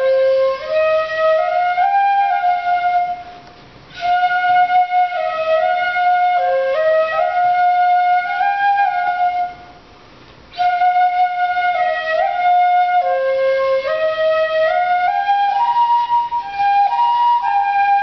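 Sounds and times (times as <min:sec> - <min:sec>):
bamboo flute melody: 0:00.0 - 0:18.0.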